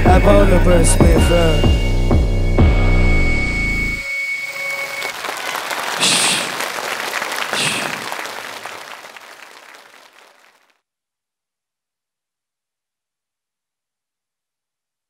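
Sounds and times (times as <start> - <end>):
audience cheering: 4.3 - 10.6
audience applauding: 4.4 - 10.7.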